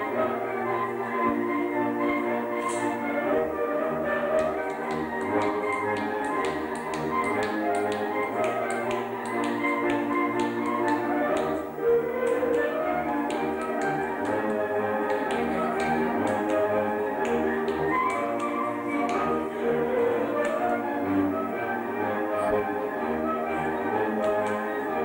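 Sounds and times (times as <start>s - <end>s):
fiddle-led string band: 0.0s - 25.0s
sharp taps keeping time: 4.2s - 21.2s.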